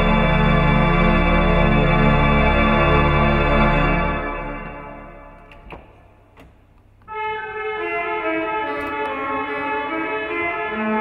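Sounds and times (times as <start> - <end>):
church organ music: 0.0 - 11.0.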